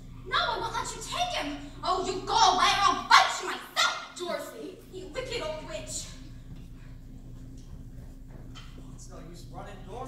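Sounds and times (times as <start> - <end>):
voices: 0.3 - 6.5.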